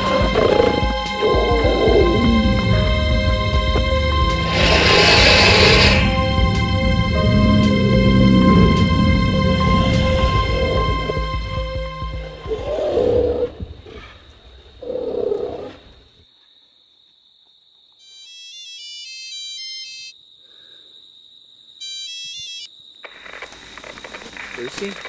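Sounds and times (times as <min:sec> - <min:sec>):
low growl-like sounds: 0:00.0 - 0:11.3
scary film score: 0:00.0 - 0:15.0
steady high whine: 0:02.4 - 0:11.5
phone ringtone melody: 0:18.0 - 0:20.1, 0:21.8 - 0:22.7.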